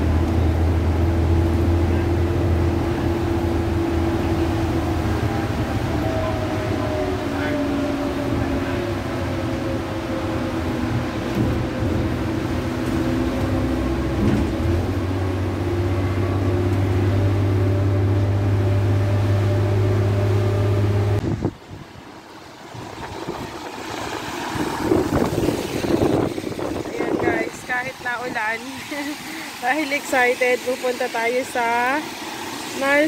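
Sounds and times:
car tyres hissing on wet road: 0:00.0 - 0:33.0
diesel engine droning: 0:00.0 - 0:33.0.

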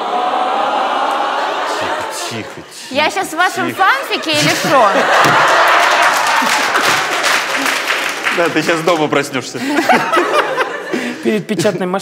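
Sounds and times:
audience applause: 0:00.0 - 0:02.5, 0:04.4 - 0:10.6
audience laughter: 0:00.0 - 0:11.7.

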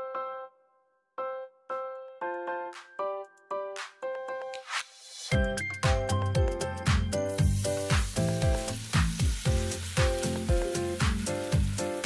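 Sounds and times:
background music with steady beat: 0:01.7 - 0:12.0
batter sizzling in frying pan: 0:06.8 - 0:12.0.

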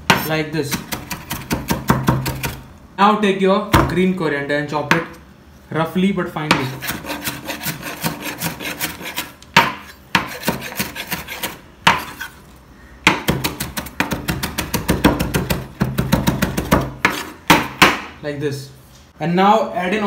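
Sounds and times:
knife chopping on wooden board: 0:00.0 - 0:02.6, 0:06.5 - 0:12.3, 0:13.0 - 0:18.1.

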